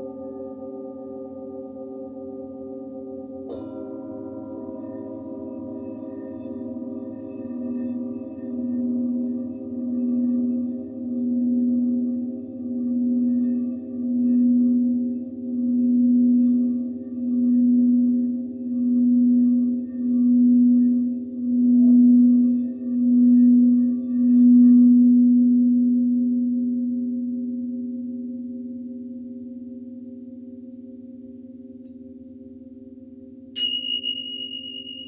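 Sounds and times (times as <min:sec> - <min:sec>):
small high-pitched bowl struck: 0:00.0 - 0:32.6, 0:33.5 - 0:35.0
singing bowl low pulsing tone: 0:00.0 - 0:35.0.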